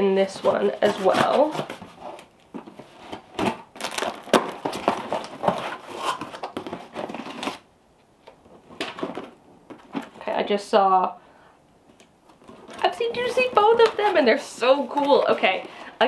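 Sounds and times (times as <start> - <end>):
cardboard flaps crinkling: 0.2 - 7.7, 8.3 - 10.4, 11.9 - 15.9
packing tape tearing: 3.3 - 7.7.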